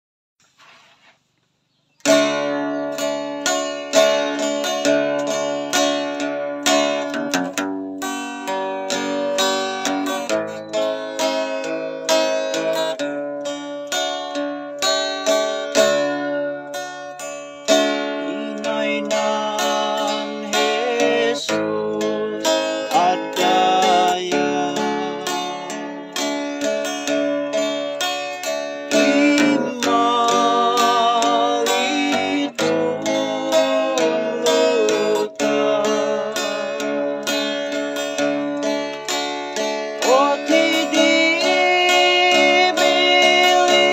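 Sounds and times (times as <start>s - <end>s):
acoustic guitar picking melody: 0.5s - 43.9s.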